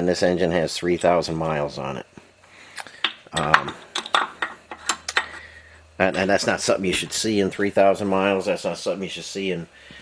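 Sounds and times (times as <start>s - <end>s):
faint low hum: 0.0s - 10.0s
metal engine parts clinking: 3.4s - 5.4s.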